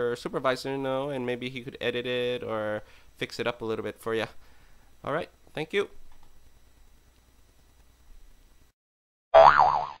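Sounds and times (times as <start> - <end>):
cartoon boing sound effect: 9.4 - 10.0.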